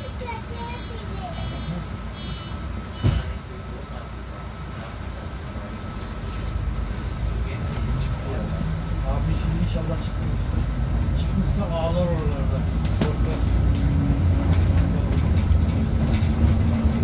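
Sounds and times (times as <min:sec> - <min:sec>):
bus engine rumble: 0:00.0 - 0:17.0
voices in bus cabin: 0:00.0 - 0:17.0
heavy thump: 0:03.0 - 0:03.3.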